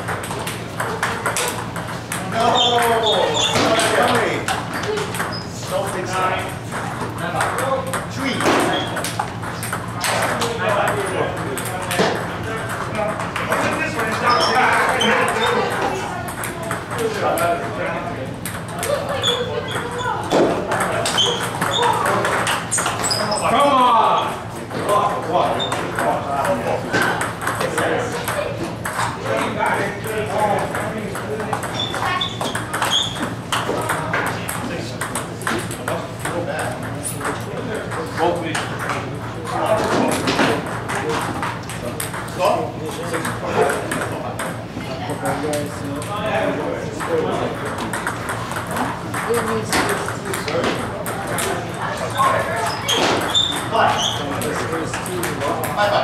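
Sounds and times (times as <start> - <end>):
balls bouncing on tables: 0.0 - 56.0
table tennis balls hitting paddles: 0.0 - 56.0.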